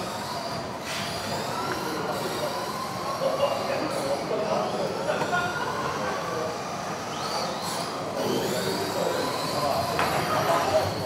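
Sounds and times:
rc car motor whine: 0.0 - 11.0.

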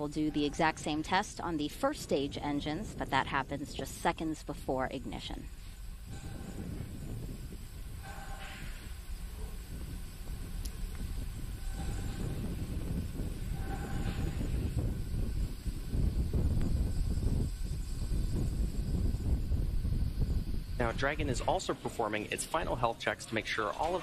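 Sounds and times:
low uneven rumble: 0.0 - 24.0.

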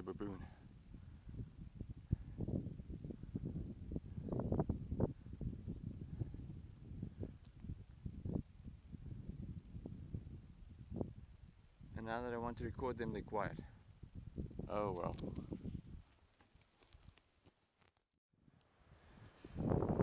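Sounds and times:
wind buffeting microphone: 0.4 - 16.1, 19.1 - 20.0.

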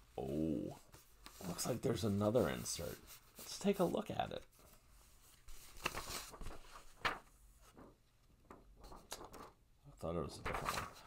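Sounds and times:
paper rustling and sliding: 0.8 - 9.6, 10.3 - 11.0.

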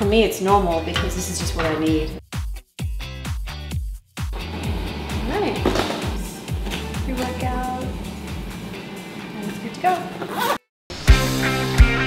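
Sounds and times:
music with kick drum: 0.1 - 4.4, 5.2 - 8.1, 11.1 - 12.0
zipper pulled shut: 10.2 - 10.7.

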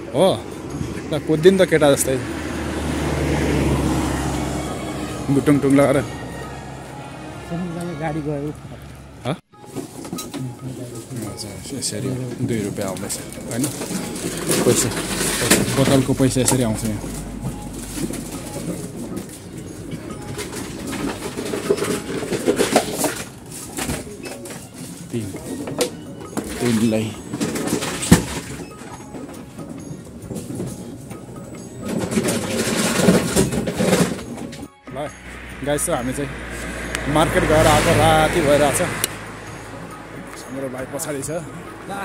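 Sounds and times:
pickup truck driving past: 0.0 - 9.7, 10.5 - 42.0
bottles clattering: 9.6 - 34.7
plastic bottles rattling and crinkling: 9.6 - 34.7.

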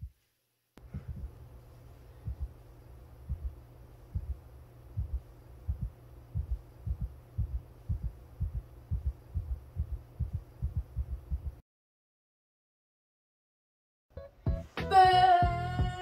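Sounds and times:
heartbeat thumps: 0.8 - 1.4, 2.2 - 2.6, 3.2 - 11.6, 15.4 - 16.0
low hum: 0.8 - 11.6.

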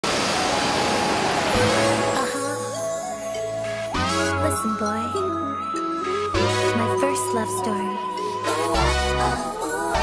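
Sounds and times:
ocean waves breaking: 0.0 - 4.3
music: 1.5 - 10.0.

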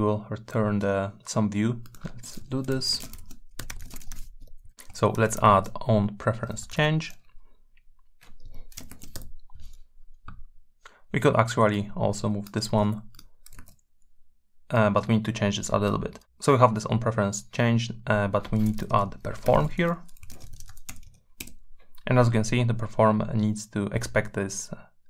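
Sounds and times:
typing on a computer keyboard: 1.8 - 5.8, 8.2 - 9.8, 12.4 - 13.8, 18.4 - 21.6.

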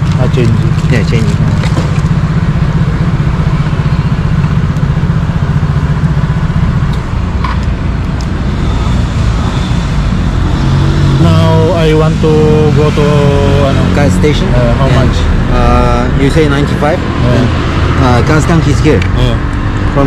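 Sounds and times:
scooter engine idling: 0.0 - 10.2.

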